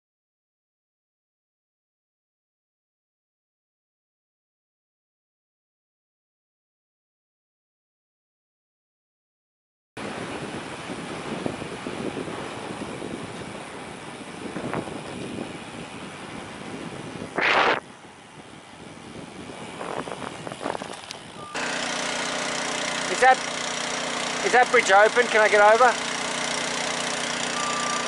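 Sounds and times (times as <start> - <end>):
bicycle wind and road noise: 10.0 - 28.0
loud burst of hiss: 17.4 - 17.8
engine idling: 21.0 - 28.0.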